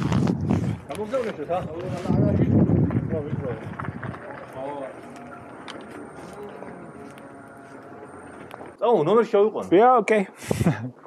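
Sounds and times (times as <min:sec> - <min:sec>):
motorcycle tyre noise on concrete: 0:00.0 - 0:08.8.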